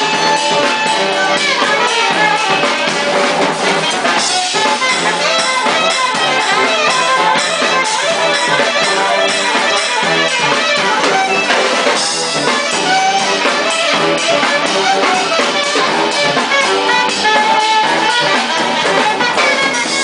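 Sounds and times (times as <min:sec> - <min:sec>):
funk band playing: 0:00.0 - 0:20.0
saxophone: 0:00.0 - 0:20.0
trombone: 0:00.0 - 0:20.0.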